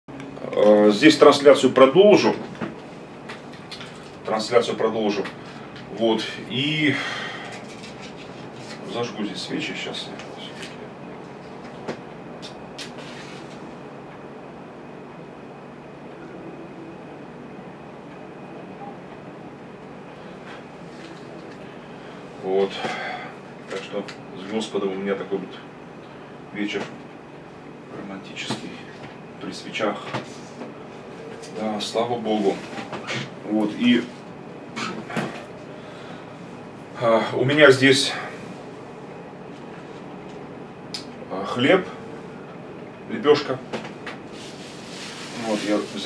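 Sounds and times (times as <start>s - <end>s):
short rustle: 44.3s - 46.0s.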